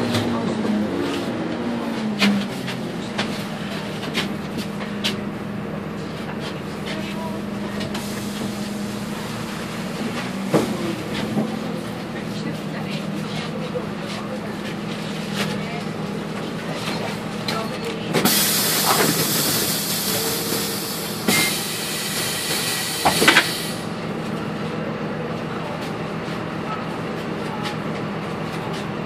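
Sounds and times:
bus engine idling: 0.0s - 29.0s
compressed air hiss: 18.3s - 23.8s.

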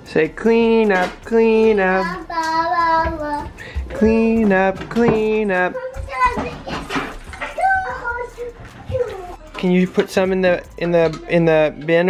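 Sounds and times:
child making high-pitched sounds: 2.0s - 3.5s, 7.6s - 9.5s.

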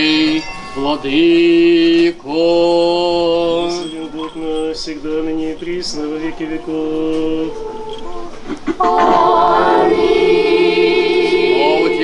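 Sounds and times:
church choir singing: 8.8s - 12.0s.

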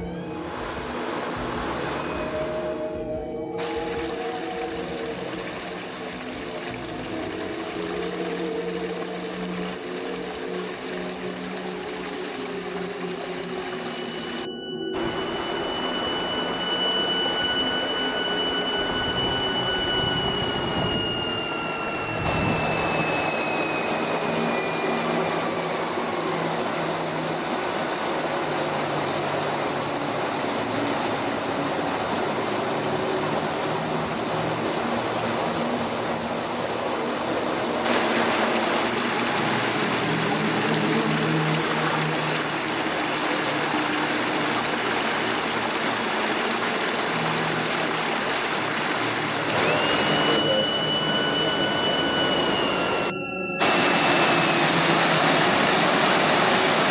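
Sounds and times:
ambient music: 0.0s - 56.9s
brook water flowing: 3.6s - 16.6s, 17.2s - 56.9s.

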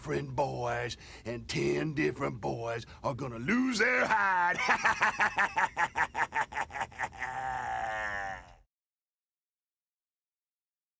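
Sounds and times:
man laughing wildly: 4.0s - 8.6s.

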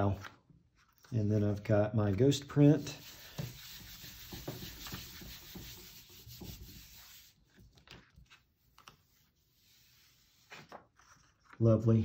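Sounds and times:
hand rubbing paper: 2.6s - 11.5s
paper rustling: 7.3s - 11.9s.

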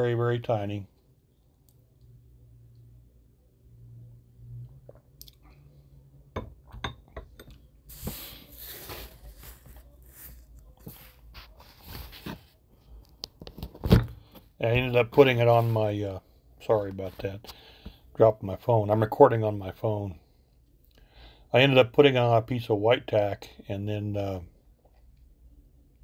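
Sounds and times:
hands handling small items: 7.9s - 12.5s.

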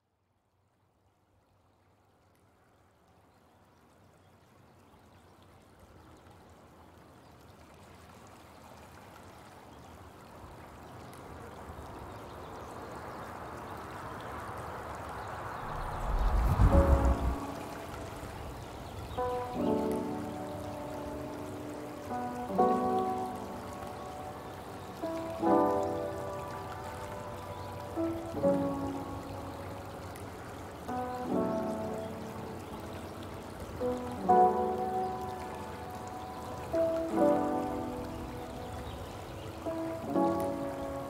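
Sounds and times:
rushing stream water: 1.8s - 41.0s
deep bass boom: 15.6s - 17.4s
lofi music: 16.1s - 18.3s.

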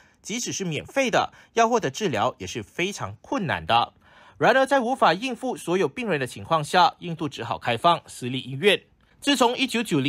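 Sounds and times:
narrator speaking: 0.2s - 10.0s.

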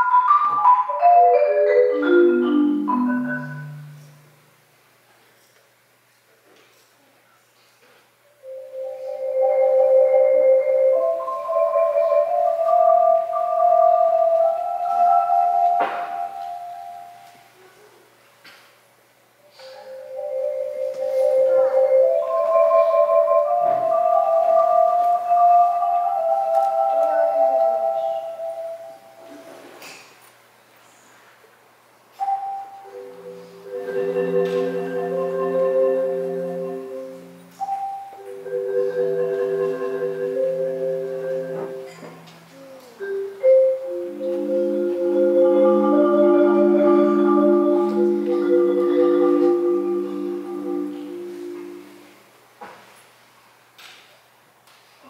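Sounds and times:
marimba: 0.0s - 4.6s, 8.4s - 17.7s, 19.5s - 29.6s, 32.2s - 52.2s.

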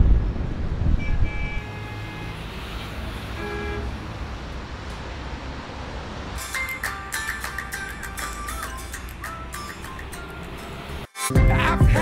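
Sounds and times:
traffic rumble: 0.0s - 11.1s
car horn toots: 1.0s - 2.4s, 3.4s - 4.0s.

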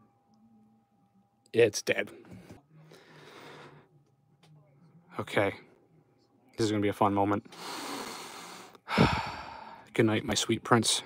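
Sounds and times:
person breathing out: 7.6s - 9.8s.

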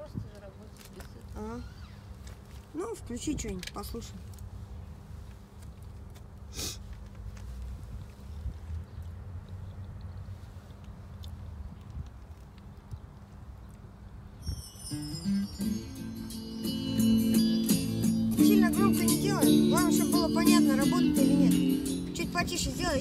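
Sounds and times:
music from car stereo: 15.4s - 23.0s
person singing: 18.3s - 23.0s.

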